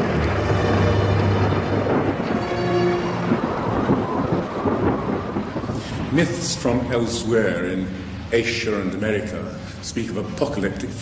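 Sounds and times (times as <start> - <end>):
rain: 0.0 - 11.0
thunder rumbling: 0.0 - 11.0.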